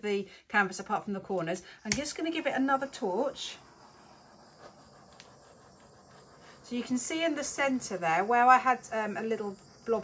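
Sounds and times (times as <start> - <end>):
gas torch hissing: 1.6 - 10.0.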